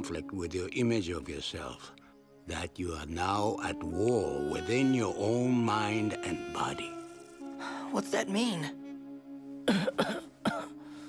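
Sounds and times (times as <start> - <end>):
man coughing: 9.7 - 10.8.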